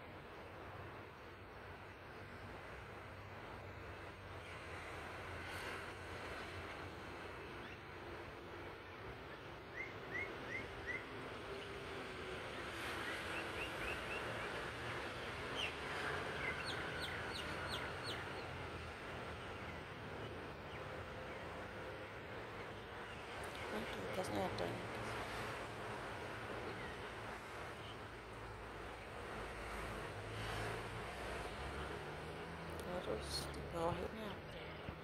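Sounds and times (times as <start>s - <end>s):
river hiss: 0.0s - 11.0s, 23.2s - 34.4s.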